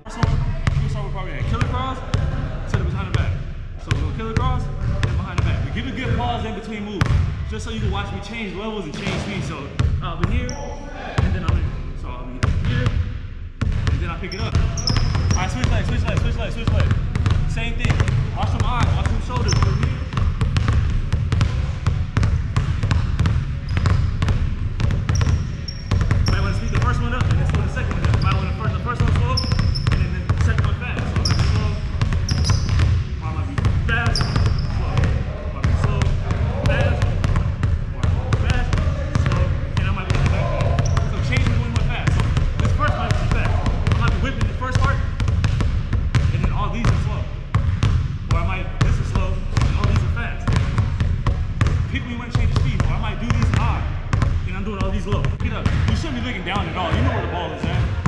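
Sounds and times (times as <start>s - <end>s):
basketball dribbling on wooden floor: 0.2s - 3.2s, 13.6s - 58.0s.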